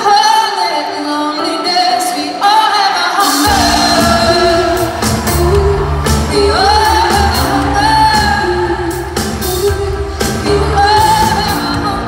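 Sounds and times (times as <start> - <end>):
live pop-rock band playing: 0.0 - 12.0
woman singing long held notes: 0.0 - 12.0.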